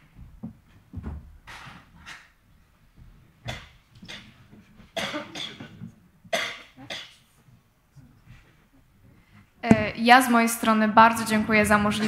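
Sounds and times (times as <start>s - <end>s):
short coughs: 5.0s - 7.2s.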